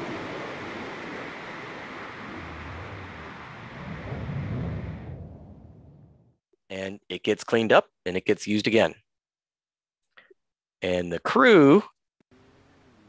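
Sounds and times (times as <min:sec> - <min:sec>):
rocket engine rumble: 0:00.0 - 0:06.4.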